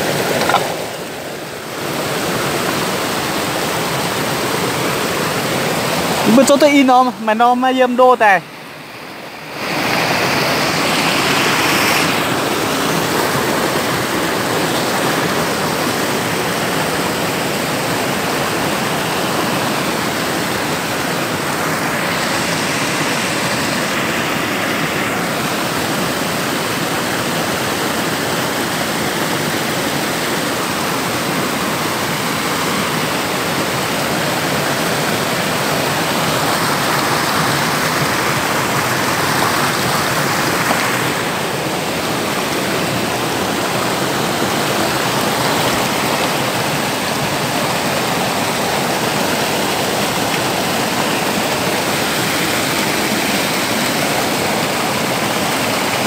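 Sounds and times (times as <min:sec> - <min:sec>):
stream rushing over rocks: 0:00.0 - 0:56.0.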